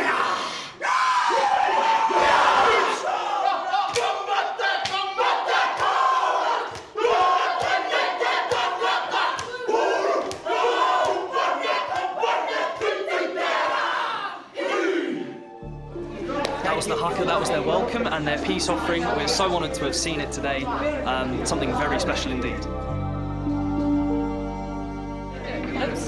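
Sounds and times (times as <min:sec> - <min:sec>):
group chanting and shouting: 0:00.0 - 0:24.0.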